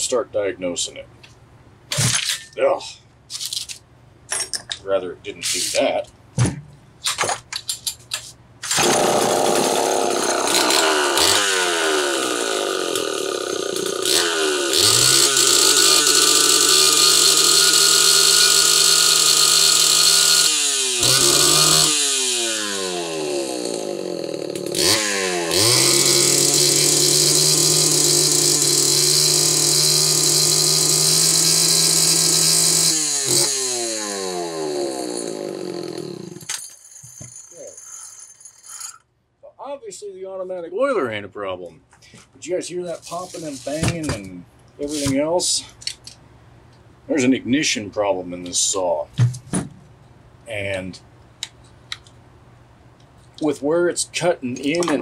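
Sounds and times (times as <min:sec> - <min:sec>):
chainsaw engine revving: 0:08.7 - 0:36.5.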